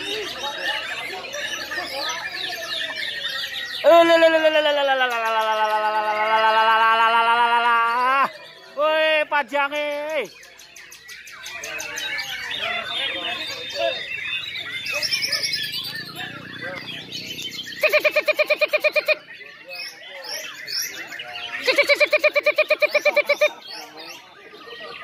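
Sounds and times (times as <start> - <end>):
birds singing together: 0.0 - 25.0
fast harsh bird notes: 10.2 - 25.0.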